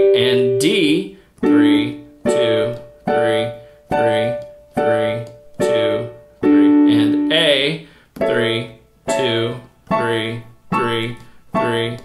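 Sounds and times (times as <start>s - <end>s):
digital piano block chords: 0.0s - 12.0s.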